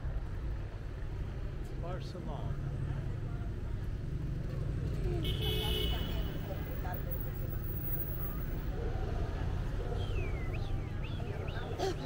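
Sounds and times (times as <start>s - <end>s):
passers-by talking: 1.3s - 12.0s.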